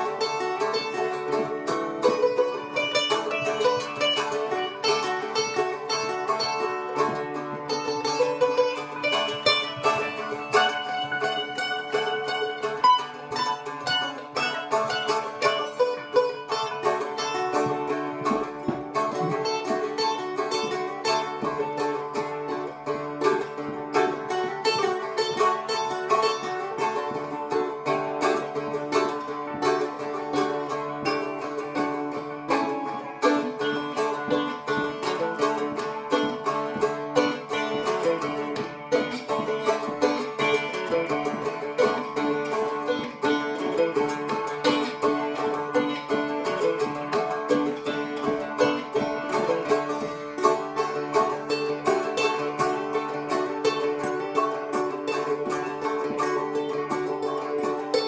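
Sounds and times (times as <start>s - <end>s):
strummed dulcimers with drone: 0.0s - 58.0s.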